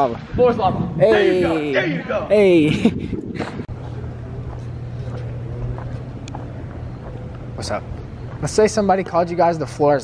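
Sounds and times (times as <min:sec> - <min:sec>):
outdoor background noise: 0:00.0 - 0:10.0
steady low hum: 0:00.0 - 0:10.0
person laughing: 0:02.5 - 0:03.7.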